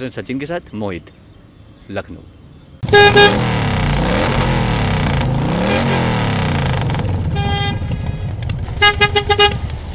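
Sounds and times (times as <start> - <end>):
car horn tooting: 2.8 - 3.5, 7.2 - 8.0, 8.7 - 9.7
vehicle engines passing: 2.8 - 9.9.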